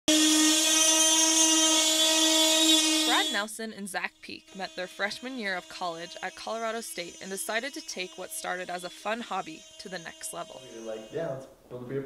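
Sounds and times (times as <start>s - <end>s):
power tool whining on plywood: 0.1s - 3.5s, 4.4s - 11.2s.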